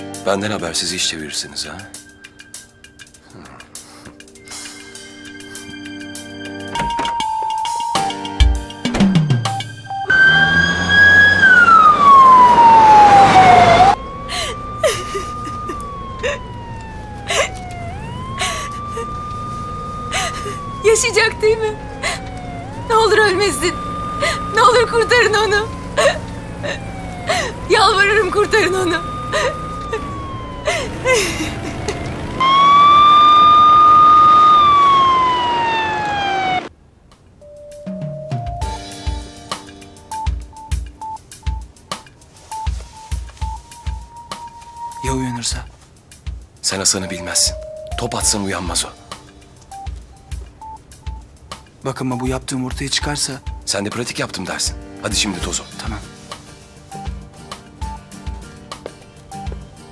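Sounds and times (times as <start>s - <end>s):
ambulance siren wailing: 9.8s - 36.7s, 42.6s - 45.6s, 46.9s - 50.0s
woman sobbing: 14.2s - 19.3s, 20.0s - 23.5s, 24.1s - 32.1s.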